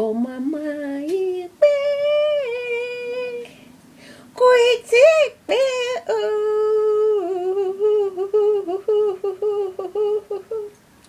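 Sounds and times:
woman humming: 0:06.1 - 0:10.8.

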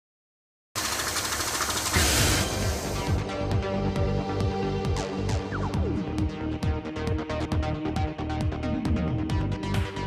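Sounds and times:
intro music: 0:02.0 - 0:10.0.

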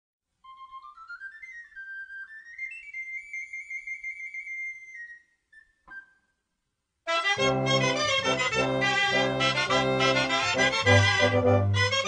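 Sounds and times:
small pipe playing solo melody: 0:07.1 - 0:12.0.

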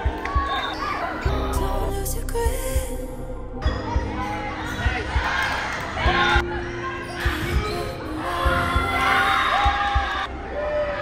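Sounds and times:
spectators shouting and cheering: 0:00.0 - 0:01.5, 0:03.7 - 0:11.0.

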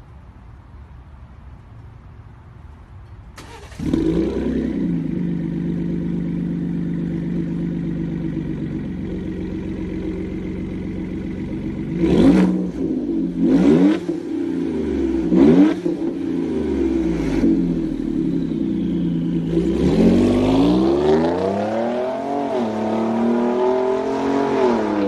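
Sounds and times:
truck engine idling and revving: 0:03.4 - 0:25.0.

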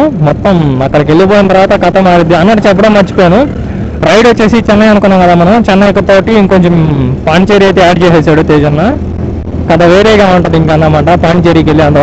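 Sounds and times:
man talking: 0:00.0 - 0:09.0, 0:09.6 - 0:12.0
motorcycle riding drone: 0:00.0 - 0:12.0.

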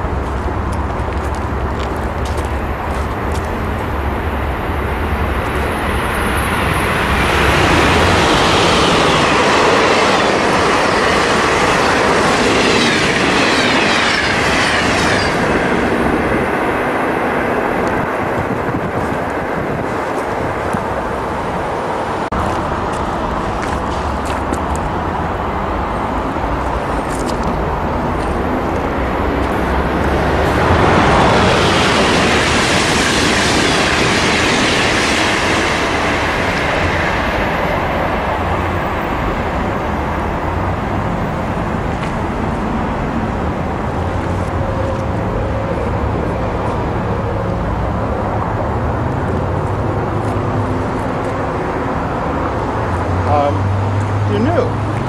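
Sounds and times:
second train approaching: 0:00.0 - 0:55.0
train passing at speed: 0:00.0 - 0:55.0
train whine falling in pitch: 0:03.8 - 0:16.8.

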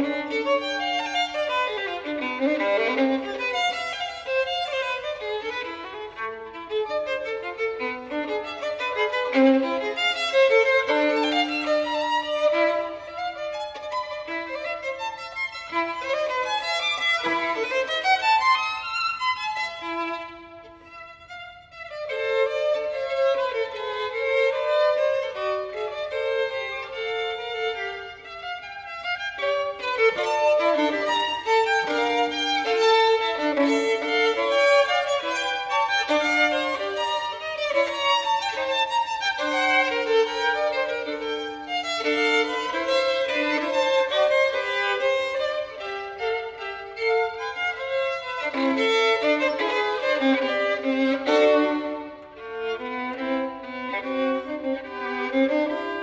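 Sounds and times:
solo violin playing: 0:00.0 - 0:56.0.

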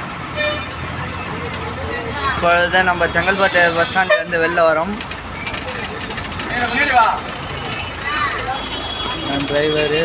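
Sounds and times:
idling engines: 0:00.0 - 0:10.0
street traffic: 0:00.0 - 0:10.0
vehicle horn toot: 0:00.4 - 0:00.8.

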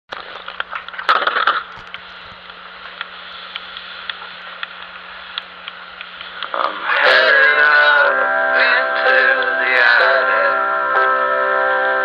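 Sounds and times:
scattered clicks: 0:00.1 - 0:06.6
crackling hiss: 0:00.1 - 0:07.0.

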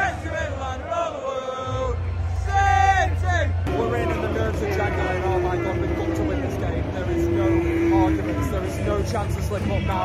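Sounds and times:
man talking: 0:03.2 - 0:10.0.

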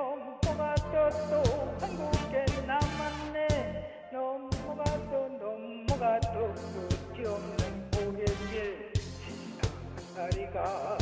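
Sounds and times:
karaoke backing track: 0:00.0 - 0:11.0
person singing with vibrato: 0:00.0 - 0:11.0.

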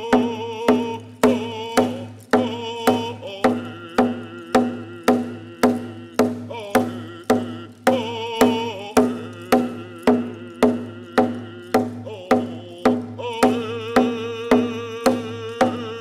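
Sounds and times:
hand drum struck with beater: 0:00.0 - 0:16.0
man singing: 0:00.0 - 0:16.0.

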